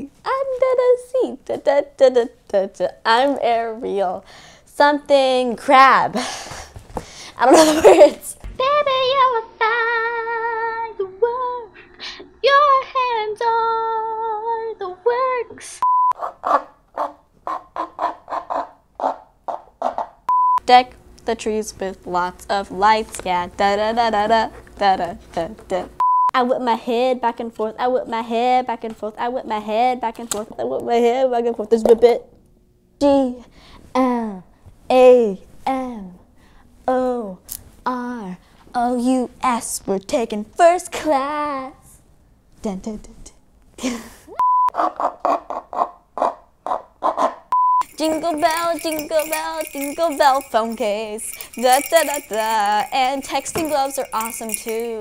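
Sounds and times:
girl laughing: 7.4s - 8.4s, 43.8s - 44.4s
censor bleep: 15.8s - 16.2s, 20.3s - 20.6s, 26.0s - 26.4s, 44.4s - 44.8s, 47.6s - 47.9s.

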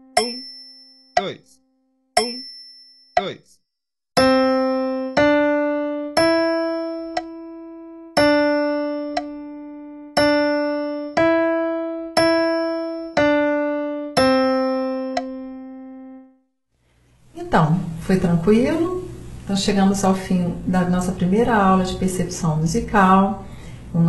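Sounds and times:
digital piano single notes: 0.0s - 1.6s, 4.2s - 16.3s.

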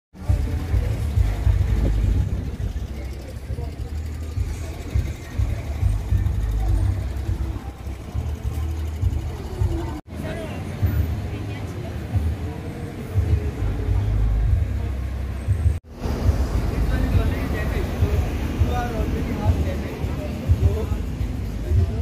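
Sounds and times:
faint voices: 0.2s - 22.0s
loud low rumble: 15.5s - 19.6s.

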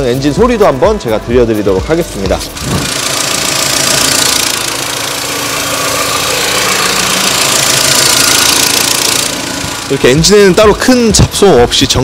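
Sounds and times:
car engine idling: 2.1s - 12.0s.

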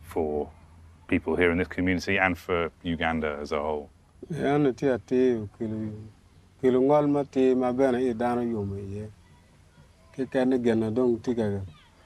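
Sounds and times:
man speaking: 0.0s - 0.5s, 1.1s - 9.1s, 10.2s - 11.7s.

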